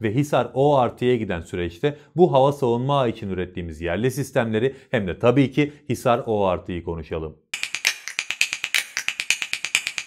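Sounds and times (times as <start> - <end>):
rapid high ticking clicks: 7.6 - 10.0.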